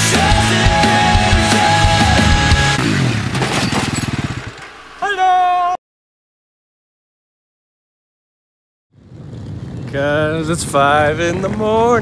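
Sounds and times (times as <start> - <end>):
quad engine revving down: 0.0 - 4.9.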